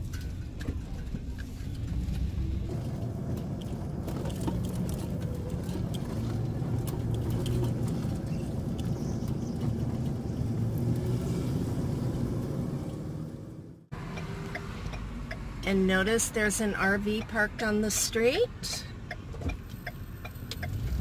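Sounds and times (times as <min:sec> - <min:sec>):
van engine and tyre rumble: 0:00.0 - 0:21.0
tyres crackling over gravel: 0:00.4 - 0:11.2.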